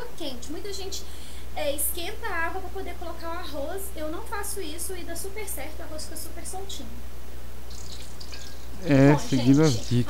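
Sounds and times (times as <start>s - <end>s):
low hum and hiss: 0.0s - 10.0s
man speaking: 8.8s - 10.0s.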